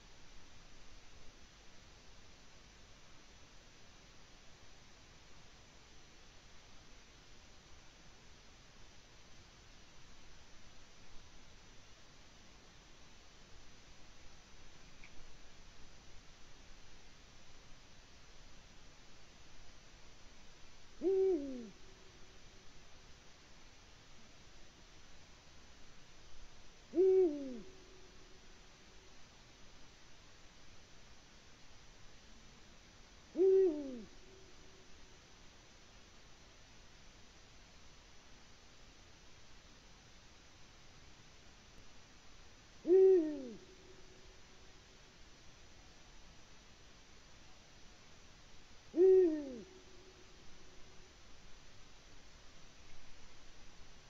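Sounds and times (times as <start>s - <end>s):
owl deep hoot: 21.0s - 22.0s, 26.9s - 28.4s, 33.3s - 34.6s, 42.8s - 44.2s, 48.9s - 50.3s.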